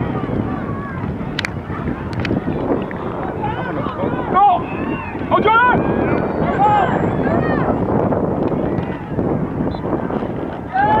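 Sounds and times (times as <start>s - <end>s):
spectators' voices: 0.0s - 11.0s
wind rumbling on microphone: 0.0s - 11.0s.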